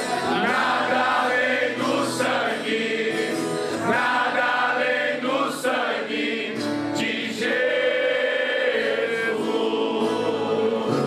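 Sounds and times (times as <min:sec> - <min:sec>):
men's choir singing gospel: 0:00.0 - 0:11.0.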